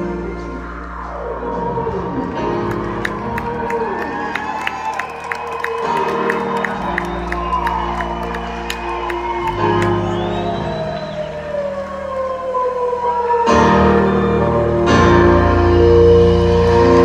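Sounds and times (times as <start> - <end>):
live band instrumental: 13.5 - 17.0.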